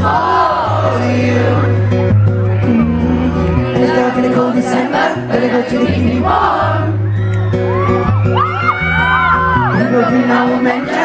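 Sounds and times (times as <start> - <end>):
acoustic guitar playing: 0.0 - 11.0
audience screaming and whooping: 6.2 - 11.0.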